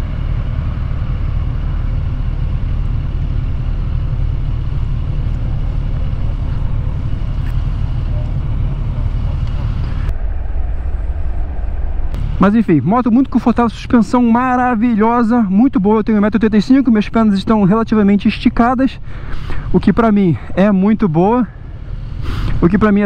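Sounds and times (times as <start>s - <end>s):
motorcycle engine idling: 0.0s - 10.1s
traffic noise: 0.0s - 23.0s.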